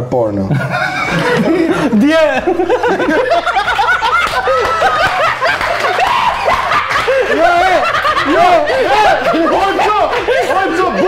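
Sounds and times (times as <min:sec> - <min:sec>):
men laughing loudly: 0:00.5 - 0:11.0.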